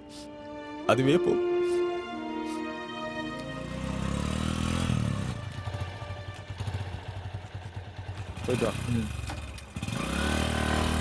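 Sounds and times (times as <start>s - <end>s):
motorcycle engine: 3.1s - 11.0s.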